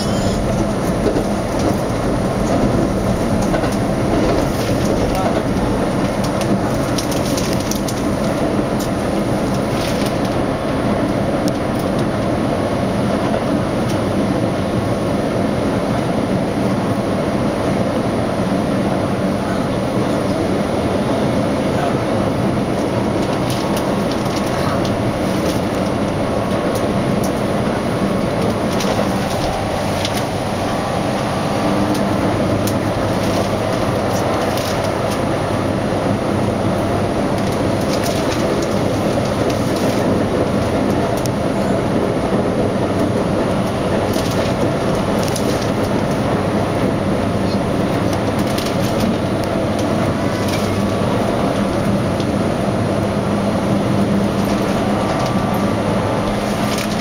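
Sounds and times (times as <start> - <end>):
train wheels rumbling on rail: 0.0 - 57.0.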